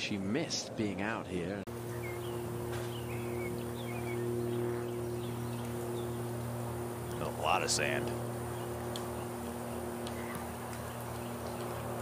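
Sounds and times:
low electrical hum: 0.0s - 12.0s
birds chirping: 1.0s - 12.0s.

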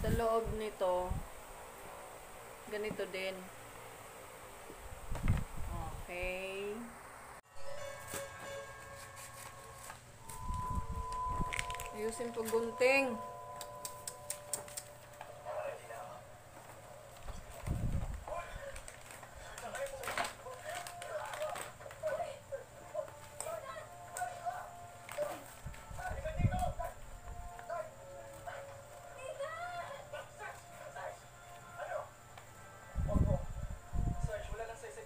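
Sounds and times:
background music: 7.5s - 17.1s, 20.3s - 35.0s.

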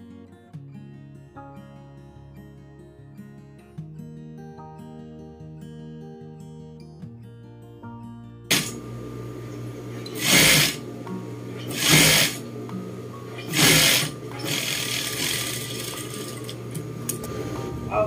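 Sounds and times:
sewing machine stitching: 8.5s - 8.8s, 9.9s - 10.8s, 11.5s - 12.5s, 13.3s - 16.8s
steady low hum: 8.5s - 18.0s.

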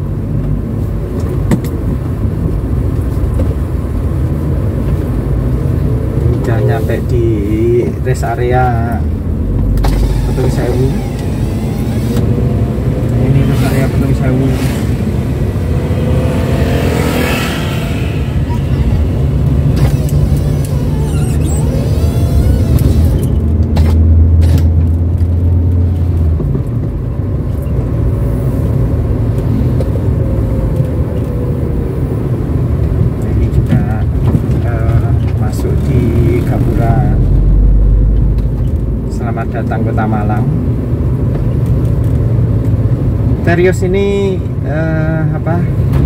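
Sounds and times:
car engine running: 0.0s - 30.9s
road and tyre noise: 0.0s - 46.0s
low drone: 5.3s - 23.4s.

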